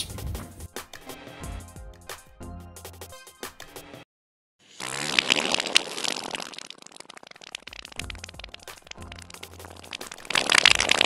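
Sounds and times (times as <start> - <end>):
loud fart: 4.7 - 7.8.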